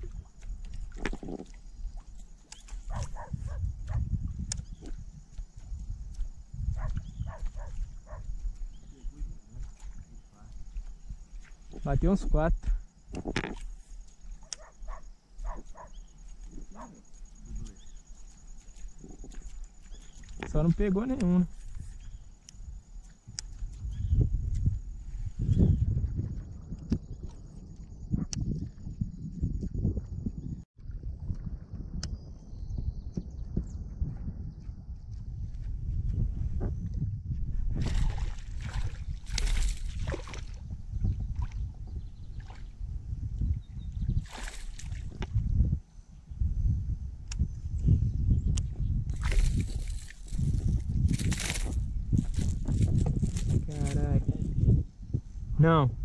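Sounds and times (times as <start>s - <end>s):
water splashing: 37.8s - 40.6s, 44.2s - 45.2s.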